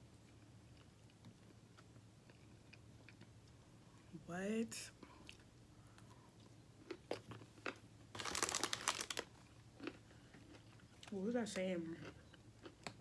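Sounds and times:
paper box crinkling: 8.2s - 9.3s.

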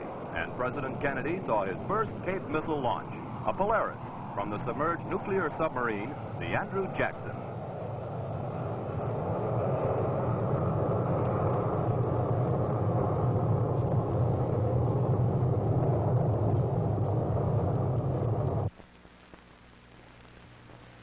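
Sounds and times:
rocket motor rumbling: 0.0s - 18.7s.

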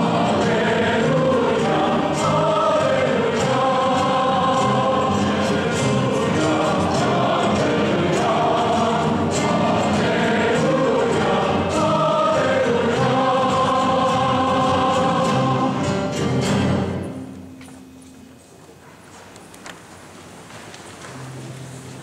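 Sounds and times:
congregation singing a hymn: 0.0s - 17.1s.

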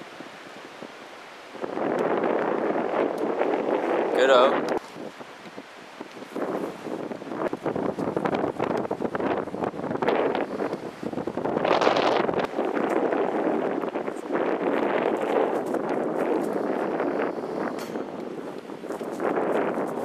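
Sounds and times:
wind gusting across microphone: 0.0s - 20.0s.

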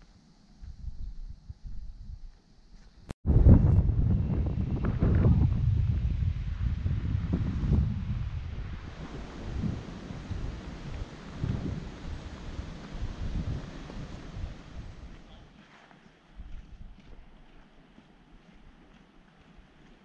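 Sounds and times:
wind buffeting microphone: 0.6s - 2.3s, 3.2s - 15.4s, 16.4s - 17.4s.

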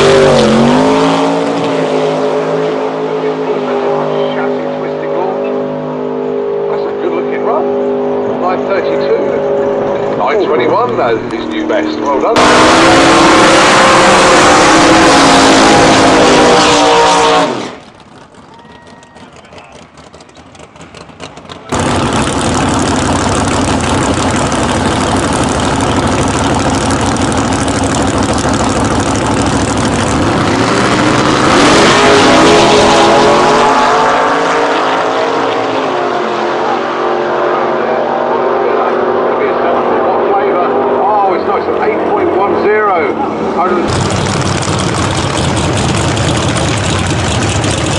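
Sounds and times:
drag car engine revving: 0.0s - 47.9s.

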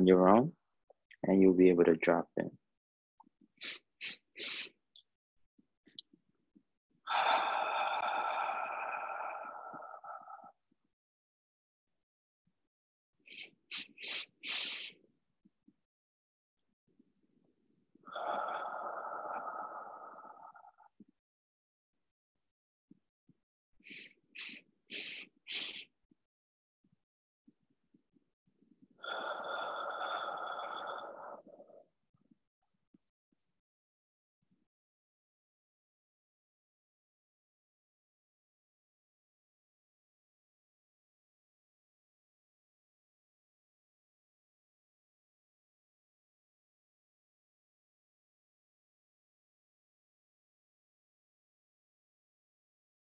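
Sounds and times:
breath exhaled through mouth: 3.6s - 4.8s, 13.3s - 15.0s, 23.9s - 25.9s
short sniffs through the nose: 13.7s - 14.9s, 23.9s - 25.9s.

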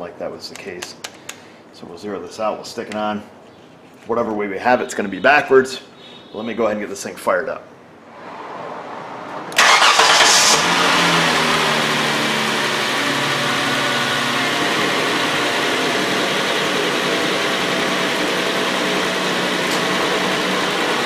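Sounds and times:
car engine starting and idling: 8.9s - 21.0s.

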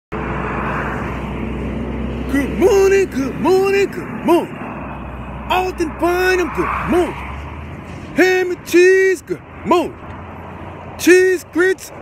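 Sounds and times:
road traffic noise: 0.1s - 12.0s
vehicle passing by: 0.1s - 12.0s.

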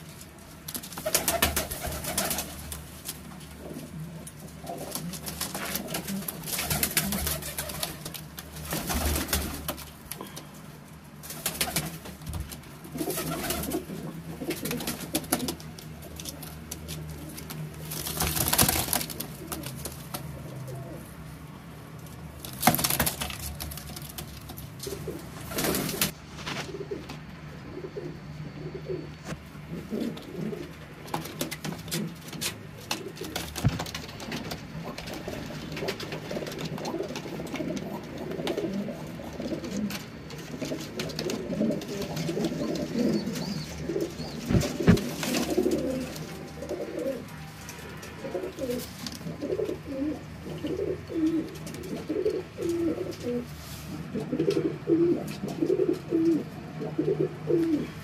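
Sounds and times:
pigeons cooing: 3.4s - 8.1s, 11.4s - 21.2s, 24.8s - 58.0s.

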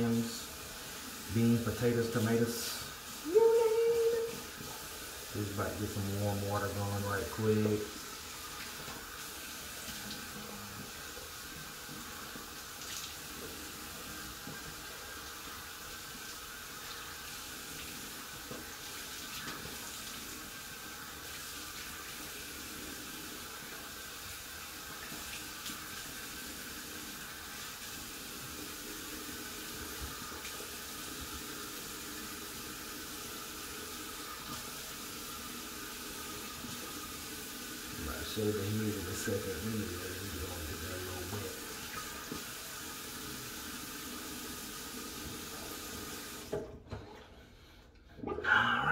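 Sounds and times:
tap water running and splashing: 0.0s - 47.8s.

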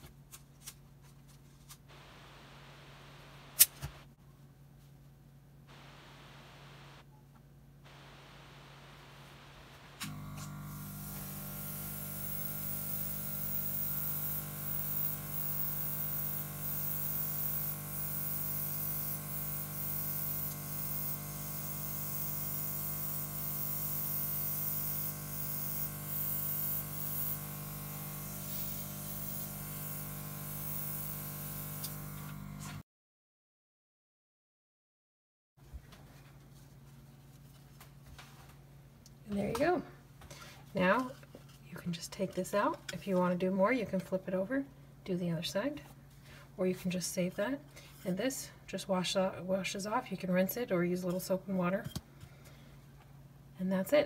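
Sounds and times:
air compressor hum: 7.9s - 32.8s
airbrush air hiss: 11.0s - 32.0s.

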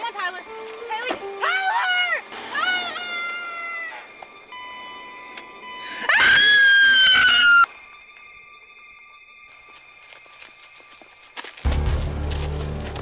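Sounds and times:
person screaming: 1.4s - 4.0s.

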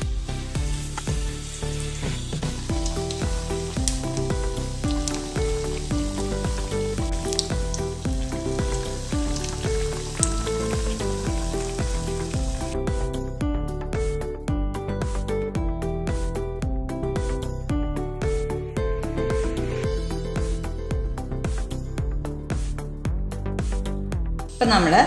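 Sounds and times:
food deep-frying in hot oil: 0.0s - 12.8s
instrumental background music: 0.0s - 25.0s.

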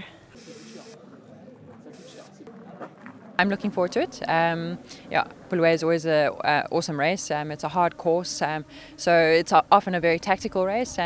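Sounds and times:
faint distant voices: 0.0s - 11.0s
short bursts of high hiss: 0.4s - 1.0s.

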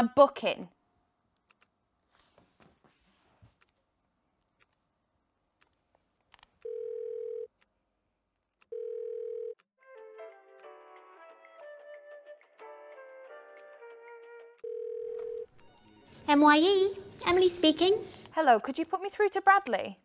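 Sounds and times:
telephone ringing tone: 6.6s - 7.5s, 8.7s - 9.6s, 14.6s - 17.5s.

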